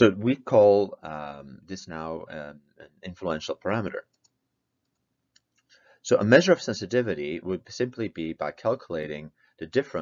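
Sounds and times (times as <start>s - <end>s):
faint clicks: 4.1s - 5.8s.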